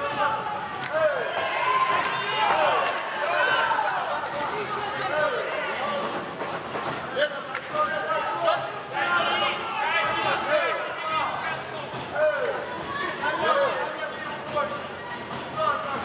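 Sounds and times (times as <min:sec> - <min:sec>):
arena crowd noise: 0:00.0 - 0:16.0.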